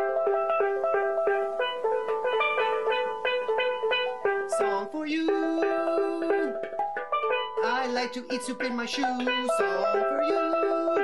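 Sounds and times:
steel pan melody: 0:00.0 - 0:11.0.

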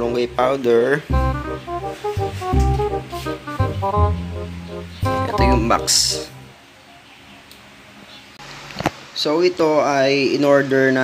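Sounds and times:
stepped melody over pulsing bass: 0:00.0 - 0:06.6.

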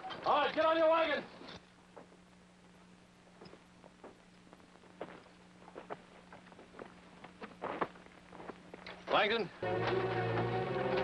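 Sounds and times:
steady low hum: 0:00.0 - 0:11.0
footsteps on rock and stones: 0:03.4 - 0:09.3.

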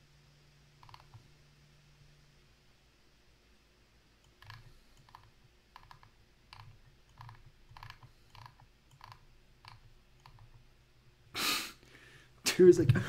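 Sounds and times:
faint computer clicks with thuds: 0:00.8 - 0:01.3, 0:04.2 - 0:10.7.

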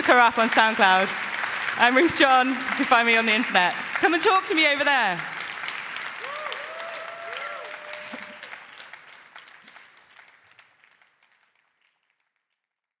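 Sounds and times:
audience applauding: 0:00.0 - 0:12.6.

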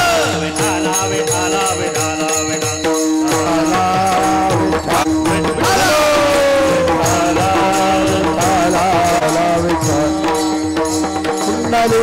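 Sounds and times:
hand drum beat: 0:00.0 - 0:12.0
harmonium drone: 0:00.0 - 0:12.0
men singing devotional chant: 0:00.0 - 0:12.0
small hand cymbals: 0:00.0 - 0:12.0.

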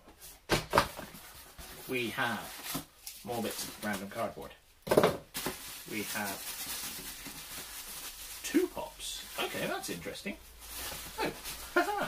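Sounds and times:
bubble wrap and cardboard rustling: 0:00.2 - 0:04.6, 0:05.3 - 0:12.0.

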